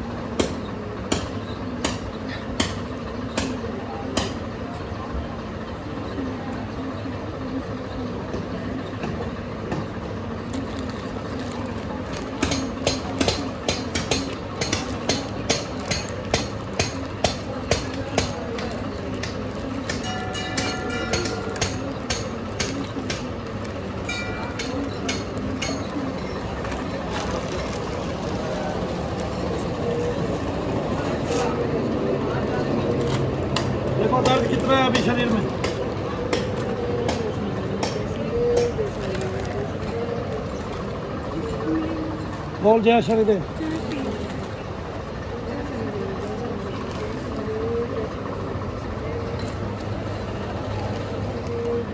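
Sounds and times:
steady mechanical hum: 0.0 - 51.9.

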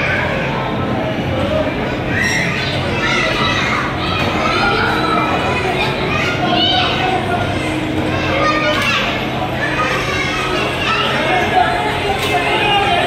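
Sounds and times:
voices chattering and calling: 0.0 - 13.0.

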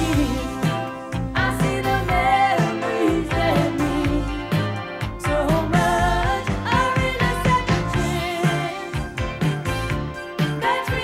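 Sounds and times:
woman singing: 0.0 - 4.6, 5.2 - 9.2
band with steady drum beat: 0.0 - 11.0.

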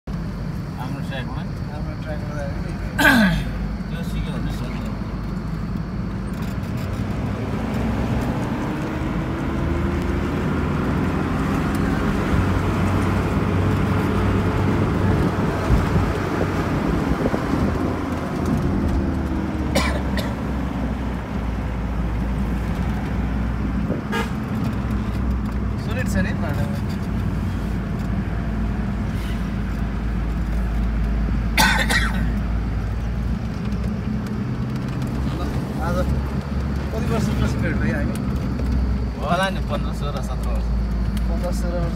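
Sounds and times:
car engine hum and road noise: 0.0 - 41.9.

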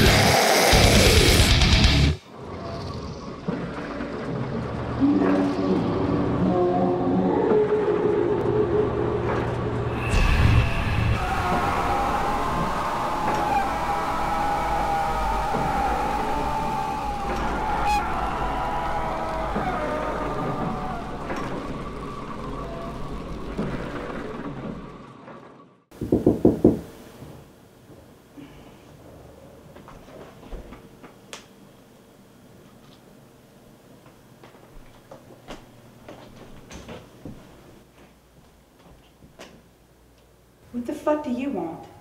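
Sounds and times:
dark ambient rumbling drone: 0.0 - 25.9
low rumbling with ringing tone: 17.1 - 25.9.

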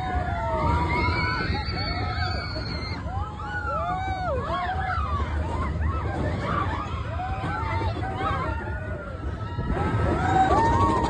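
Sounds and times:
riders screaming: 0.0 - 11.0
roller coaster train rumble: 0.0 - 11.0.

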